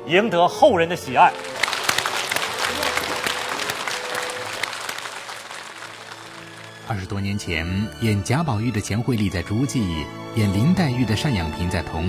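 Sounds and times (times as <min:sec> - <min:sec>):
audience applauding: 0:01.1 - 0:07.1.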